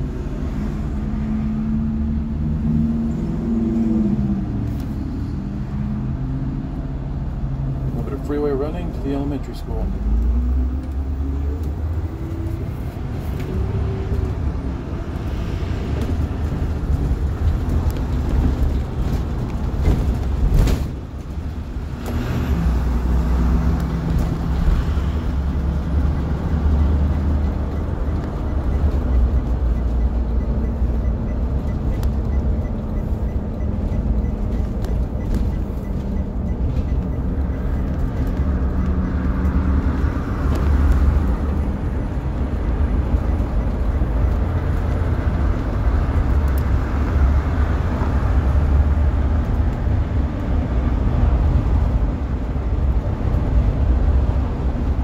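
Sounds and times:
bus engine droning: 0.0 - 55.0
road noise: 0.0 - 55.0.

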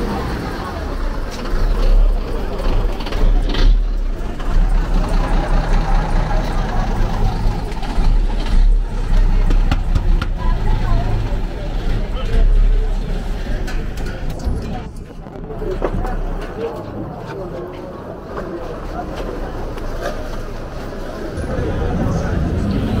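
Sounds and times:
large vehicle engine rumble: 0.0 - 23.0
street noise: 0.0 - 23.0
voices: 0.0 - 23.0.

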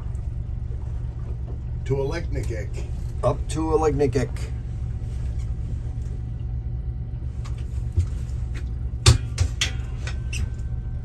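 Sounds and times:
motorboat engine rumbling: 0.0 - 11.0.

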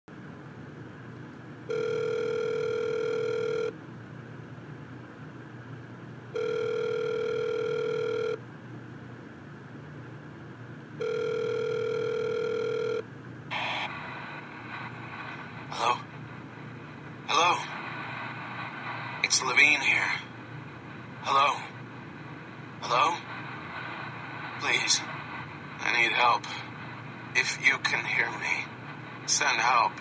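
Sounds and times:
telephone ringing tone beeps: 1.7 - 3.7, 6.4 - 8.4, 11.0 - 13.0
crackle burst: 13.5 - 30.0
low hiss: 13.5 - 30.0.

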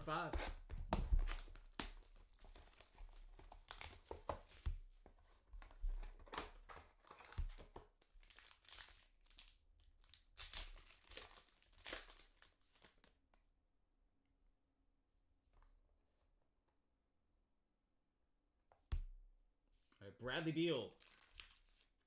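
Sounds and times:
cards being handled: 0.3 - 9.5
wrappers crinkling and tearing: 6.2 - 13.1, 20.9 - 22.0.

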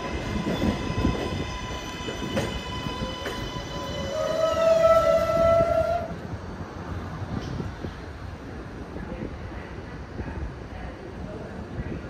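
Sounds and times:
train wheels rumbling: 0.0 - 12.0.

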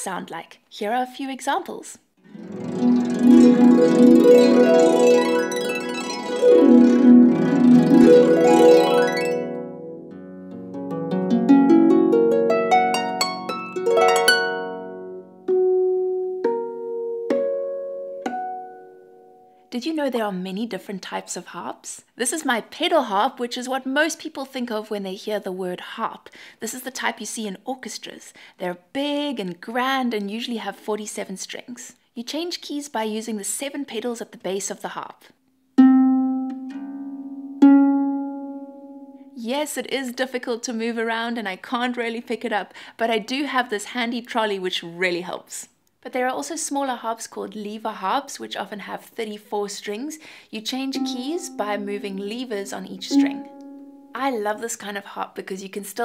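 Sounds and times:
harp plucked strings: 2.3 - 19.4, 35.8 - 39.2, 50.9 - 54.2
harp string plucked: 53.1 - 54.1.

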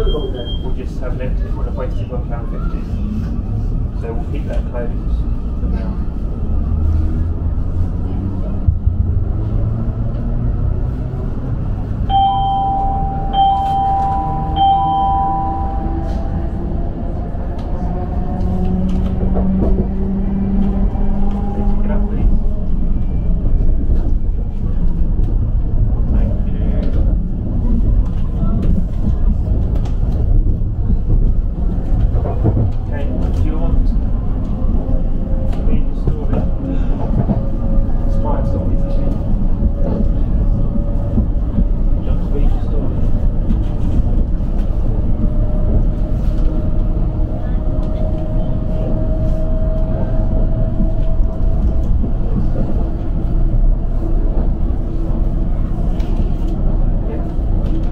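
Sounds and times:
short beeps: 0.0 - 0.8, 12.1 - 16.3
wheels rumbling on rail: 0.0 - 57.9.

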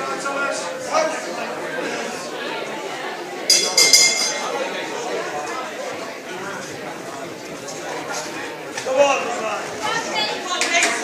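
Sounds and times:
crowd chatter: 0.0 - 11.0
boxing ring bell ringing: 3.5 - 4.5.

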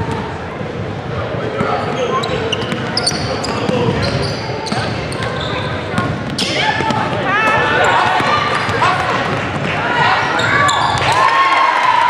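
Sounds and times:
sneakers squeaking: 1.5 - 11.2
basketball bouncing: 2.5 - 9.8.

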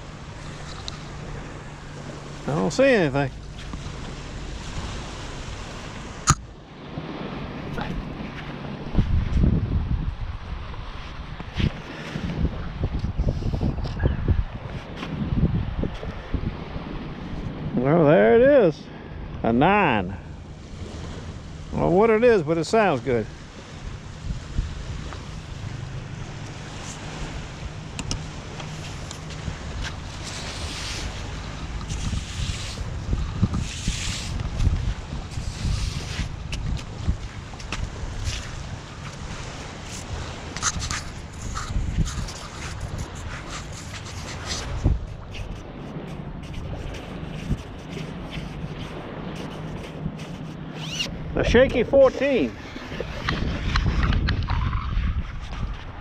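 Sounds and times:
knocks and scrapes on wet sand: 0.0 - 9.6, 10.8 - 17.6, 20.6 - 56.0
surf washing: 0.0 - 56.0
wind buffeting microphone: 0.0 - 56.0.

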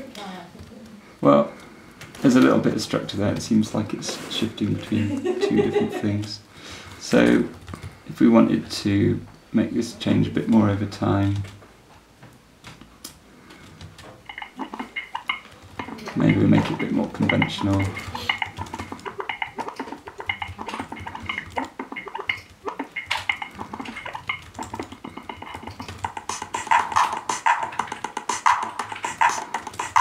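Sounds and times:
electronic drum sample loop: 14.2 - 30.0.

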